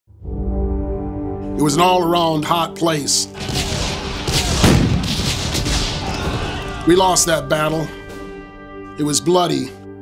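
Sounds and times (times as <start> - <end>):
cannon boom with low rumble: 3.4 - 6.5.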